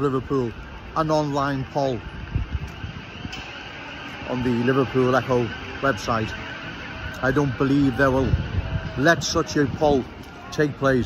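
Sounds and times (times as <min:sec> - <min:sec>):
pedestrian street hubbub: 0:00.0 - 0:11.0
wind buffeting microphone: 0:00.0 - 0:11.0.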